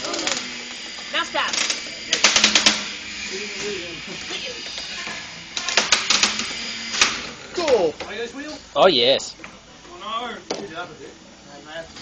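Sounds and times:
faint voices: 1.1s - 12.0s
robots clattering rapid clicks: 1.4s - 2.8s, 5.6s - 7.2s.

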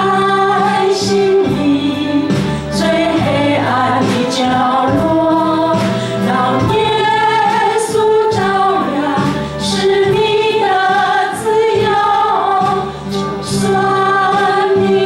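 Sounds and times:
instrumental backing: 0.0s - 15.0s
women singing worship song: 0.0s - 15.0s.

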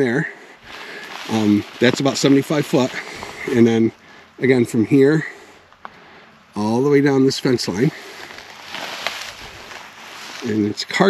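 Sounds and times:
footsteps through dry grass: 0.0s - 4.2s, 7.6s - 11.0s.

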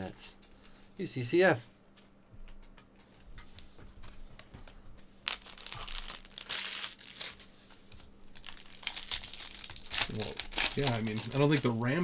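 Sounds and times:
foil wrapper crinkling and tearing: 5.2s - 7.5s, 8.3s - 12.0s.

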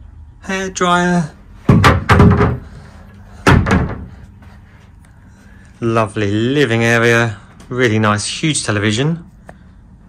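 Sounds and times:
wooden wardrobe doors knocking shut: 1.7s - 2.8s, 3.4s - 4.2s.

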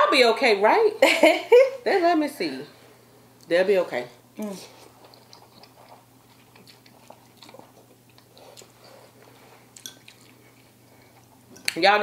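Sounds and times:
chewing and slurping noodles: 4.7s - 11.5s.

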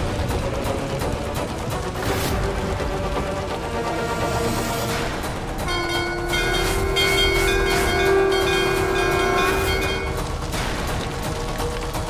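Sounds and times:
bell-like ringing tones: 5.7s - 10.2s
held horn-like tone: 5.7s - 10.2s.

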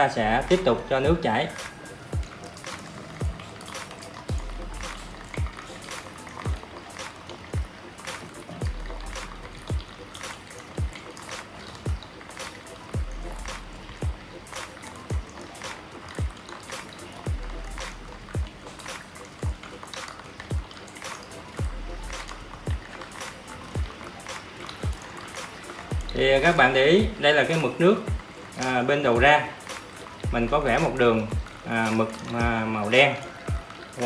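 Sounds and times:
water trickling into plastic tub: 0.0s - 34.0s
music with kick-drum beat: 0.3s - 27.2s, 28.1s - 28.4s, 29.2s - 32.7s, 33.5s - 34.0s.

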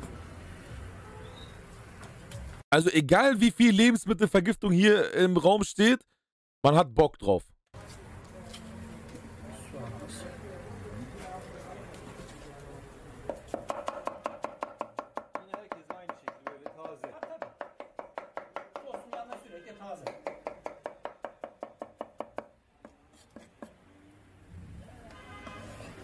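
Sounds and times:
knife chopping on wooden board: 13.3s - 19.4s, 20.0s - 23.8s.

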